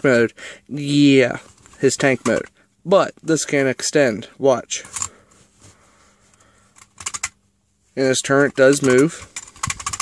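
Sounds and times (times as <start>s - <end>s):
hard plastic toy clicking: 8.7s - 10.0s.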